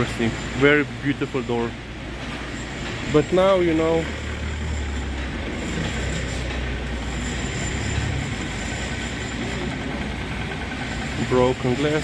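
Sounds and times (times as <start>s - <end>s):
heavy vehicle engine rumble: 0.0s - 12.0s.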